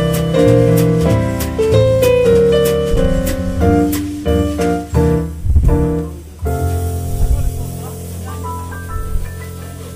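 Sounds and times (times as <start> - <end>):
jazz piano trio playing: 0.0 - 9.9.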